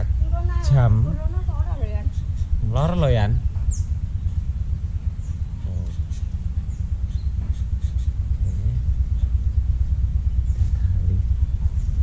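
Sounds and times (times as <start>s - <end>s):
wind buffeting microphone: 0.0s - 12.0s
faint high bird chirps: 5.0s - 9.6s.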